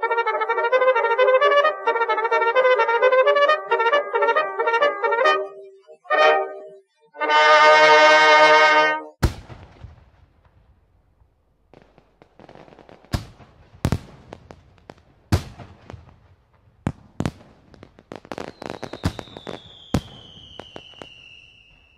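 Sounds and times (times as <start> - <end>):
high whistle sliding downward: 0.0 - 6.8.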